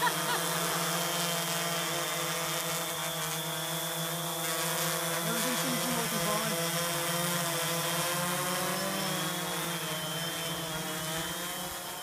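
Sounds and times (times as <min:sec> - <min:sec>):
quadcopter rotors buzzing: 0:00.0 - 0:12.0.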